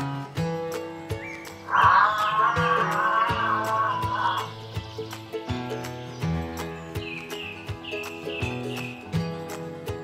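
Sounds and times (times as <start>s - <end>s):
background music with plucked strings: 0.0s - 10.0s
animal call: 1.6s - 4.6s.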